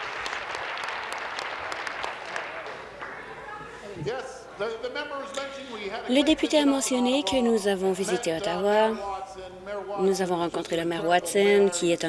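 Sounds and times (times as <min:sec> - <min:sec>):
group applauding: 0:00.0 - 0:03.5.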